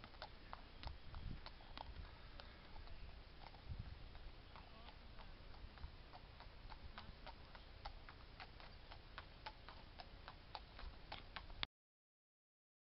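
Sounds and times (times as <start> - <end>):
horse hooves clip-clopping on tarmac: 0.0 - 11.7
wind rumble on microphone: 0.8 - 4.4, 5.1 - 7.6.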